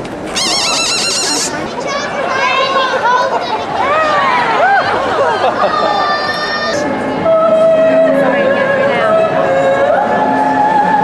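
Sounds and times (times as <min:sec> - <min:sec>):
horse neighing: 0:00.4 - 0:01.6.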